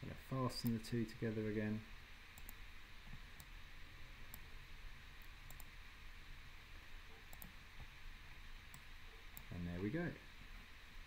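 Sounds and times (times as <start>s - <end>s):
steady low hiss: 0.0s - 11.0s
computer mouse clicks: 2.4s - 2.6s, 4.3s - 4.5s, 5.2s - 5.7s, 7.3s - 7.6s, 8.7s - 9.5s.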